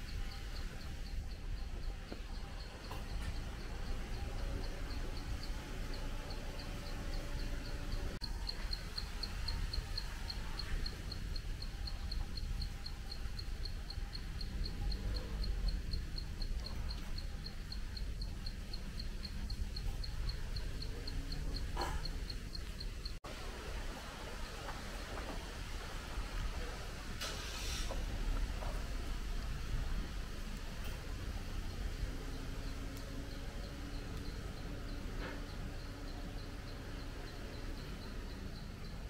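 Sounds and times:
low background rumble: 0.0s - 27.2s
insect chirping: 0.0s - 39.0s.

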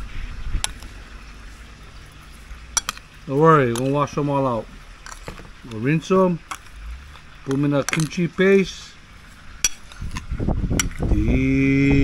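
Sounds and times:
steady low rumble: 0.0s - 12.0s
spoon stirring wet fish in bowl: 0.6s - 11.0s.

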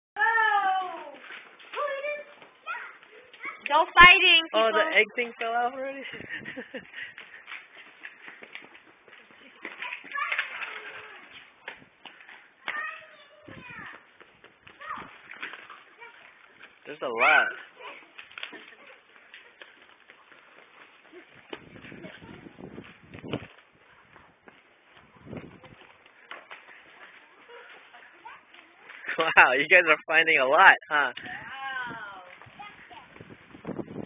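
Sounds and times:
child calling: 12.7s - 14.0s.

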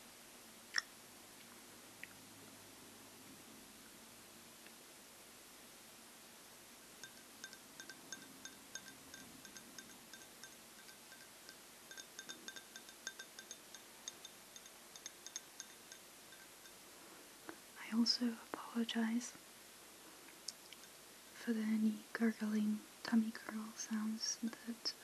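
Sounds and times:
drinking glass clinking: 7.0s - 16.8s.

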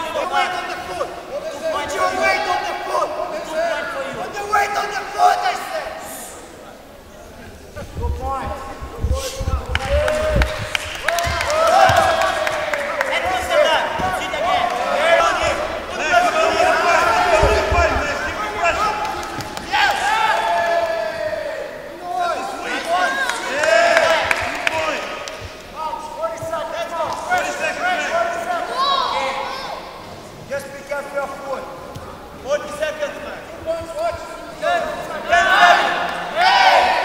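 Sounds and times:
people shouting: 9.8s - 25.0s, 35.2s - 37.0s.

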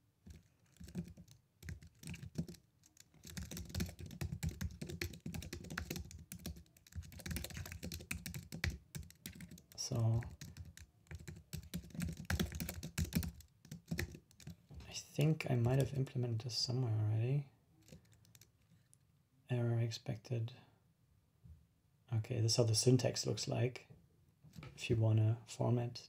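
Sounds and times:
typing on a computer keyboard: 0.3s - 14.6s, 17.8s - 18.5s.

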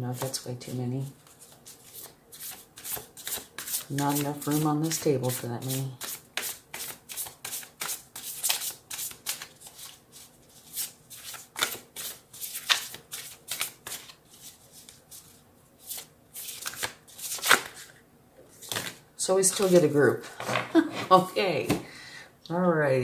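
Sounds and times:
cards being shuffled by hand: 1.2s - 19.9s.

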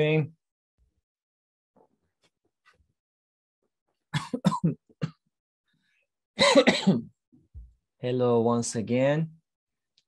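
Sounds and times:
person coughing: 4.2s - 5.2s, 6.4s - 7.1s.

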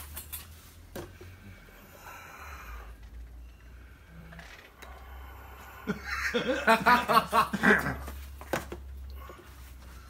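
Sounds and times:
faint breathing: 1.0s - 6.3s.

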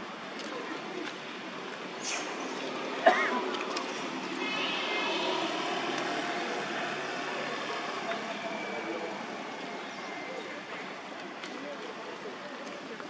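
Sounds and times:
outdoor background noise: 0.0s - 13.0s
distant engine drone: 2.0s - 11.1s.

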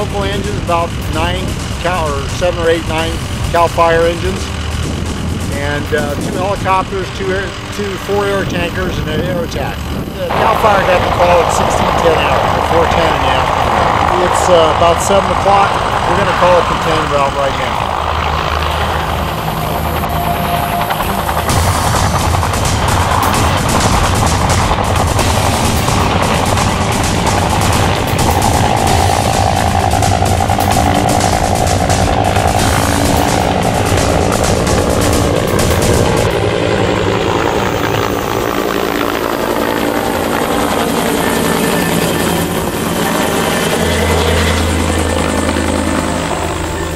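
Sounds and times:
helicopter rotor chopping: 0.0s - 46.9s.

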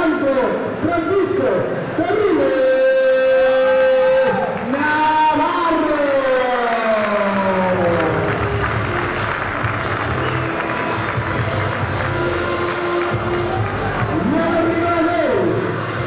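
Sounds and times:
crowd applauding and cheering: 3.4s - 16.0s
music playing: 7.2s - 16.0s.

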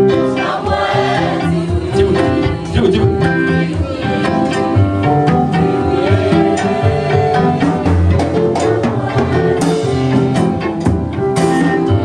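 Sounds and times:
people singing through microphone: 0.0s - 10.7s
electric guitar: 0.0s - 12.0s
keyboard playing: 0.0s - 12.0s.

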